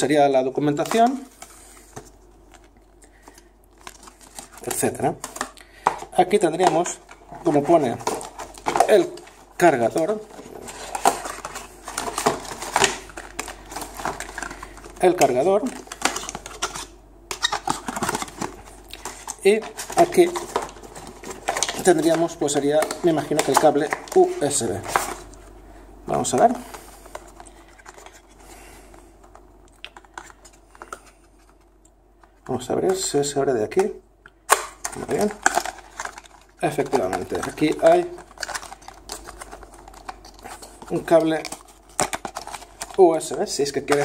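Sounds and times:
hands handling cardboard box: 0.8s - 25.3s, 34.8s - 44.0s.

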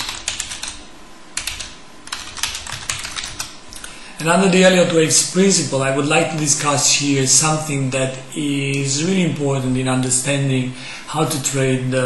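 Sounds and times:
computer keyboard typing: 0.0s - 0.8s, 1.4s - 3.6s.

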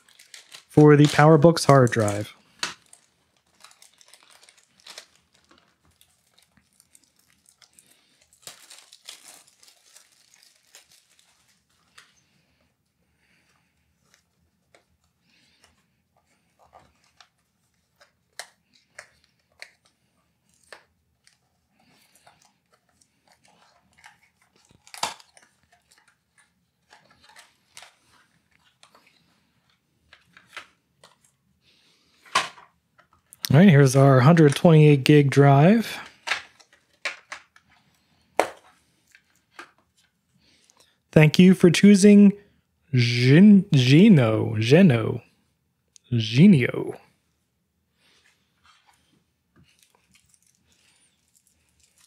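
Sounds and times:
plastic bag crinkling: 0.0s - 12.6s, 16.6s - 33.5s, 48.0s - 52.0s.

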